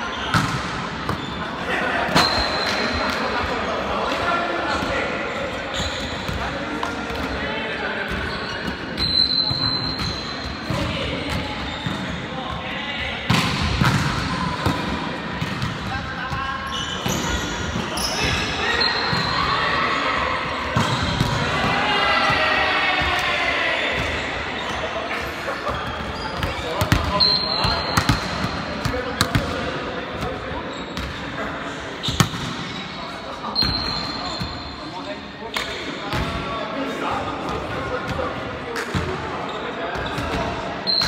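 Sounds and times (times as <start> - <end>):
volleyball hits echoing: 13.1 - 16.0, 25.6 - 30.4.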